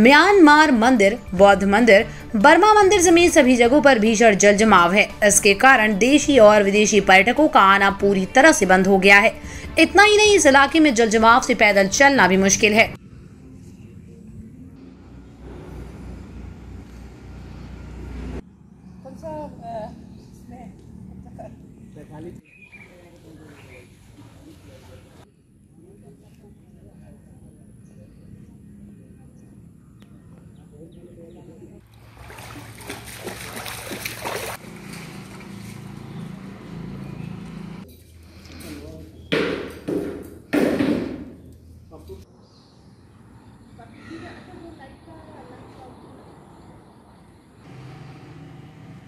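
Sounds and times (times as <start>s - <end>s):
low motor hum: 12.8s - 22.4s, 26.4s - 38.6s, 47.6s - 49.0s.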